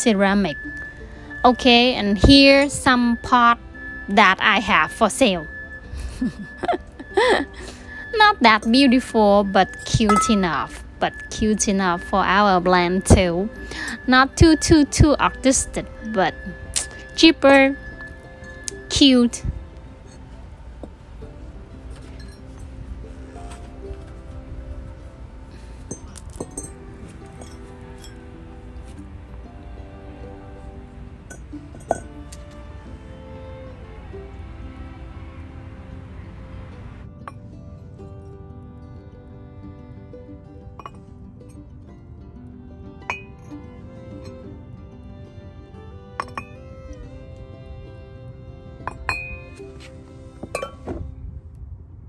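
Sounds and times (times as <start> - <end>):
background music: 0.0 - 52.0
ceramic pots clinking: 6.1 - 19.4, 21.8 - 24.1, 25.5 - 29.1, 31.2 - 32.6, 40.7 - 41.1, 43.1 - 43.6, 46.2 - 46.6, 48.8 - 51.1.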